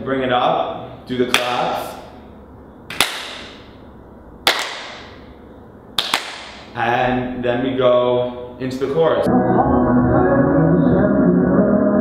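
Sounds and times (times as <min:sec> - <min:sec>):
hand claps echoing in a hall: 0:01.3 - 0:01.6, 0:02.9 - 0:03.7, 0:04.4 - 0:05.2, 0:06.0 - 0:06.7.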